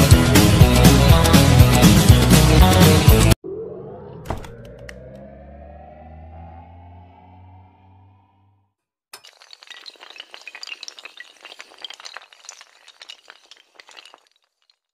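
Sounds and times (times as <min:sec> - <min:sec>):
rising electronic tone: 0:03.4 - 0:08.7
glassy clinks and shattering: 0:09.2 - 0:14.9.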